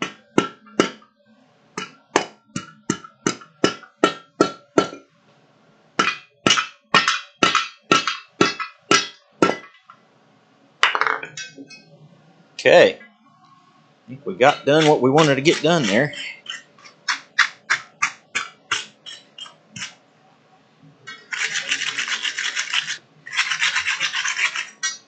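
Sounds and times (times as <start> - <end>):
hammer striking steel on anvil: 0.0 - 1.0, 1.8 - 5.0, 6.0 - 9.7.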